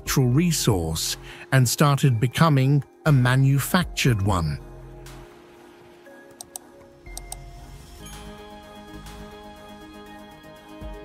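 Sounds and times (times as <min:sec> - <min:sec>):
background music with bass: 0:00.0 - 0:11.0
sharp clicks: 0:06.4 - 0:07.4.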